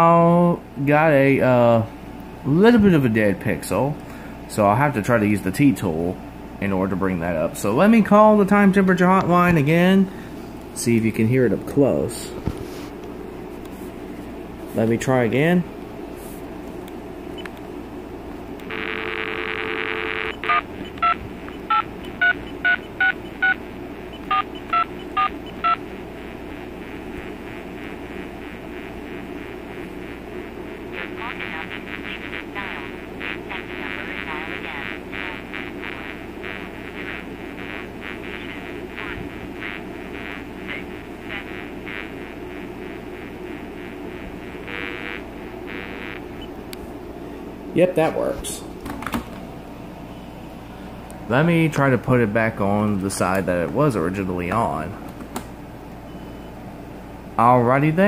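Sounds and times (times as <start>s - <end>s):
recorded announcement through earpiece: 10.8s - 12.4s, 14.7s - 15.7s, 30.8s - 42.0s, 51.3s - 55.0s
telephone dial tone: 18.6s - 23.6s, 24.2s - 25.8s
keypad touch-tones: 19.7s - 25.8s.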